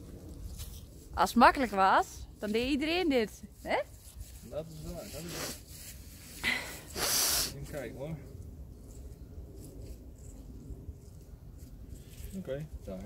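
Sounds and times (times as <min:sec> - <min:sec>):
person sniffing: 0:05.2 - 0:05.7, 0:06.4 - 0:07.6.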